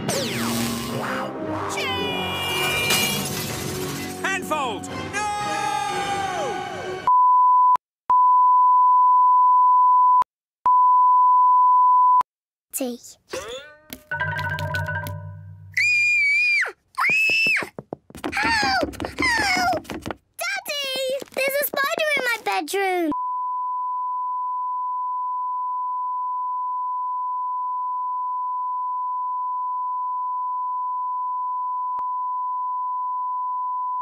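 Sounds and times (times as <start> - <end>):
cartoon music: 13.3 - 15.5
cartoon girl screaming: 15.8 - 17.7.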